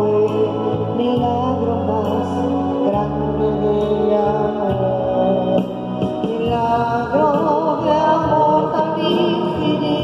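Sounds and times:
electronic keyboard playing chords: 0:00.0 - 0:10.0.

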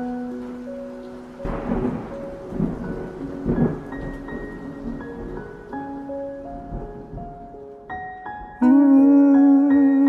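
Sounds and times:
rain: 0:00.0 - 0:10.0
soft sustained keyboard notes: 0:00.0 - 0:10.0
thunder rolling: 0:00.0 - 0:10.0.

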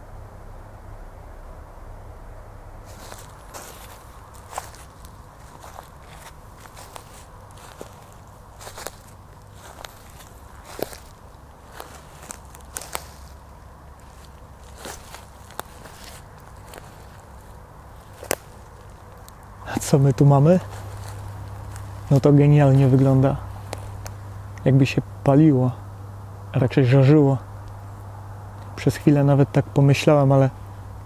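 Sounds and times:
low hum: 0:00.0 - 0:31.0
footsteps on dry leaves: 0:02.8 - 0:24.4
twigs snapping: 0:02.9 - 0:24.7.

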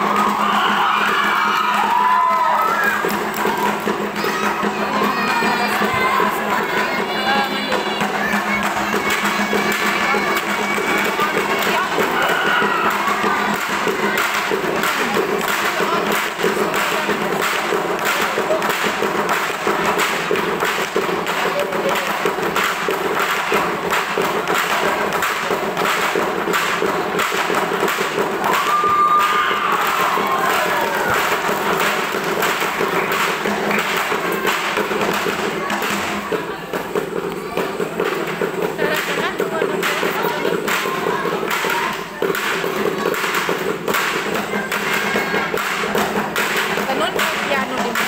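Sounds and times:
crowd murmuring: 0:00.0 - 0:48.0
percussion beat: 0:00.0 - 0:48.0.

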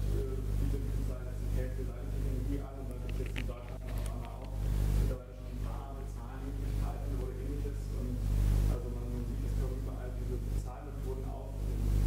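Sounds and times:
low electrical hum: 0:00.0 - 0:12.0
speech: 0:00.0 - 0:12.0
light clicks: 0:02.9 - 0:04.6.

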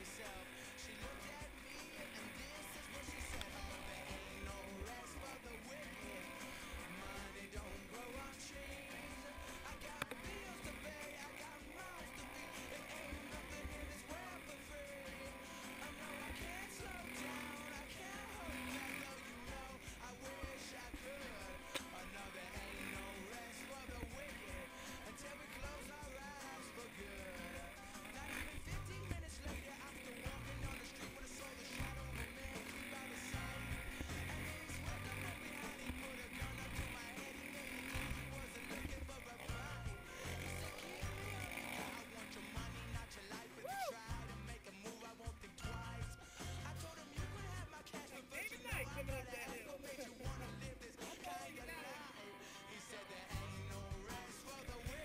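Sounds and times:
person singing: 0:00.0 - 0:55.0.

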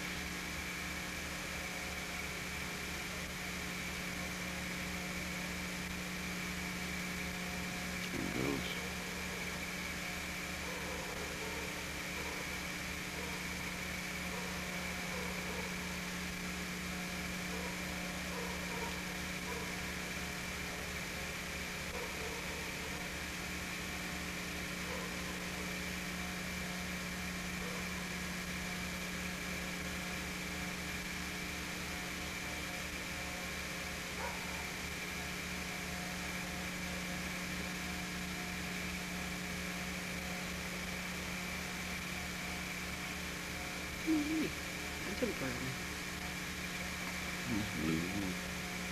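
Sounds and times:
constant hiss: 0:00.0 - 0:48.9
faint high whine: 0:00.0 - 0:48.9
mechanical hum: 0:00.0 - 0:48.9
low pulsing drone: 0:42.3 - 0:48.9.

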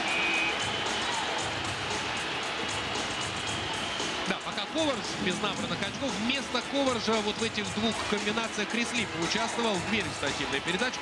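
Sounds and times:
arena crowd noise: 0:00.0 - 0:11.0
music over public address system: 0:00.0 - 0:11.0.

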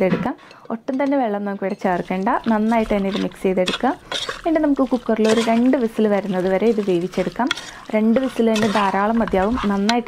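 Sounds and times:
metal spoon stirring in metal pot: 0:01.8 - 0:10.0
person speaking: 0:01.8 - 0:10.0.

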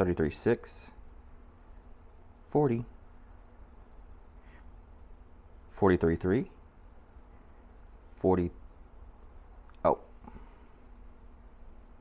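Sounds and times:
faint high hiss: 0:00.0 - 0:12.0.

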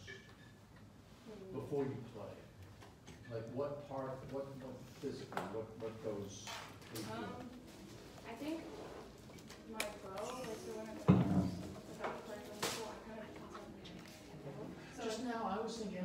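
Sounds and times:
indistinct talking in a room: 0:00.0 - 0:16.0.

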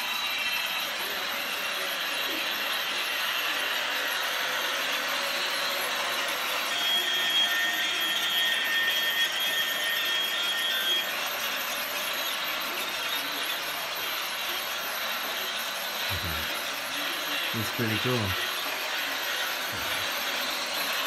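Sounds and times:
toy train motor whirring: 0:00.0 - 0:21.0.

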